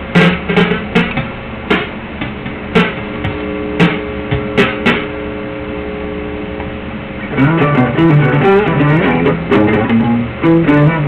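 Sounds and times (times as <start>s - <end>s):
box fan whooshing hum: 0.0s - 11.0s.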